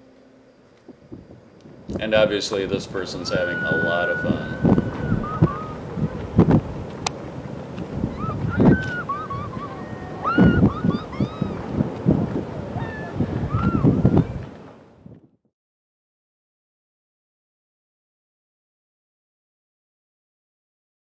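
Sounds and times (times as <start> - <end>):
gusty wind on microphone: 0.8 - 15.4
person whooping and yelling: 3.0 - 6.2, 8.1 - 11.7, 12.7 - 14.2.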